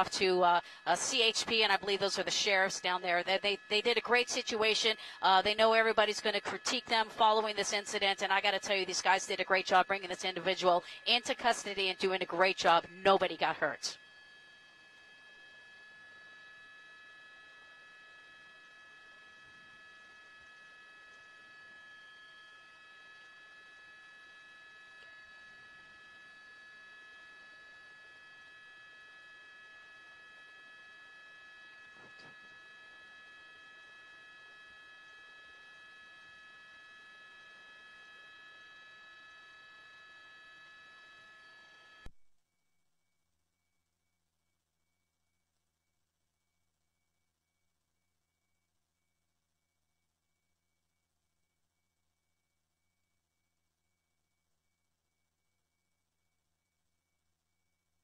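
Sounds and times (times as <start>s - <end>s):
steady high-pitched tones: 0.0s - 14.0s.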